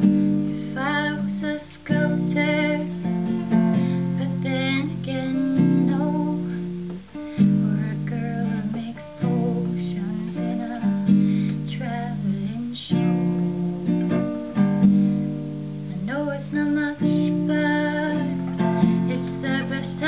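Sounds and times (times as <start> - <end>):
girl singing: 0.0 - 14.3, 15.8 - 20.0
acoustic guitar strumming chords: 0.0 - 20.0.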